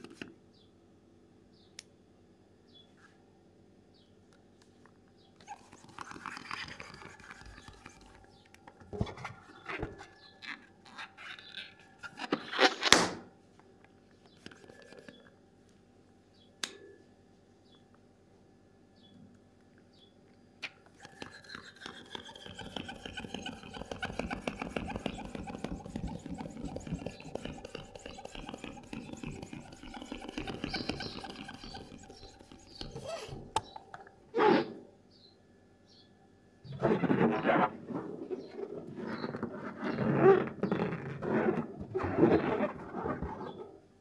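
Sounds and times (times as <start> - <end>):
rubber balloon squeaks: 5.4 - 8.3, 9.0 - 13.0, 21.0 - 33.7, 36.7 - 43.8
air rushing from balloon pump: 21.1 - 33.5.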